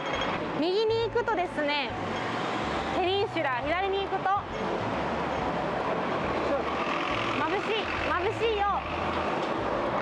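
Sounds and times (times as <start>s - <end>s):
bus engine running: 0.0s - 10.0s
city street traffic: 0.0s - 10.0s.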